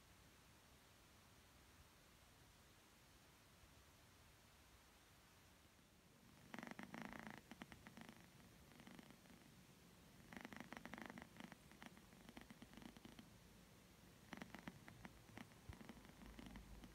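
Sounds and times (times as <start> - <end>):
cat purring softly: 1.4 - 16.9.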